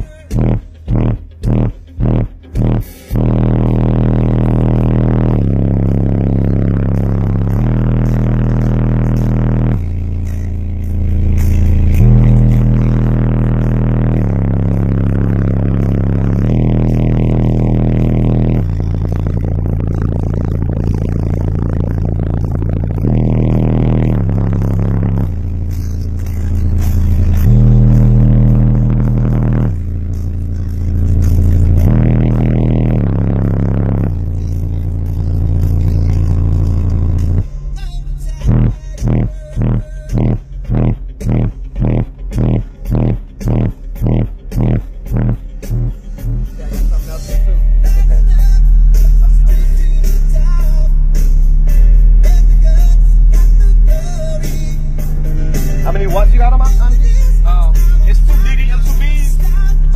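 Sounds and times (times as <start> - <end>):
loud bass-heavy music: 0.0 - 59.9.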